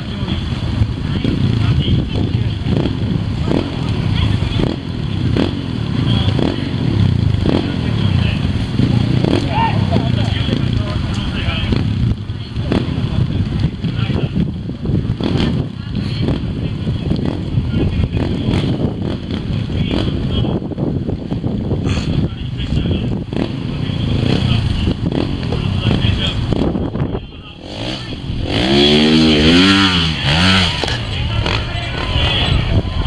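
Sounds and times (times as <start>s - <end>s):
crowd chatter: 0.0s - 33.0s
motorcycle engine revving: 0.0s - 33.0s.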